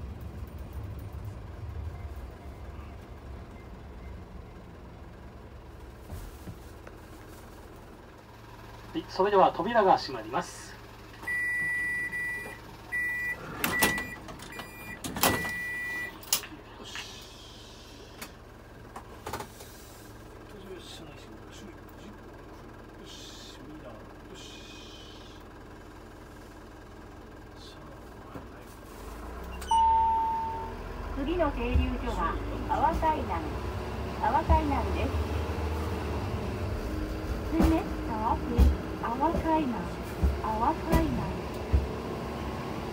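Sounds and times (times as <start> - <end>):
engine rumble: 0.0 - 42.9
door warning chime: 11.3 - 16.2, 29.5 - 30.8
short beep: 11.3 - 16.2, 29.6 - 30.8.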